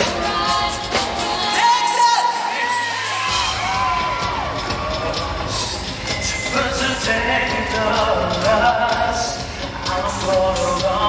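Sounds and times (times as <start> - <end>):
bass and drums: 0.0 - 11.0
live pop band with singing: 0.0 - 11.0
audience cheering: 1.3 - 7.6.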